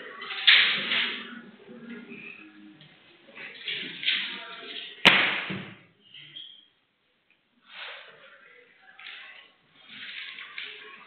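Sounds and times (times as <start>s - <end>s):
sharp smack: 5.0s - 5.8s
paper rustling: 9.0s - 11.0s.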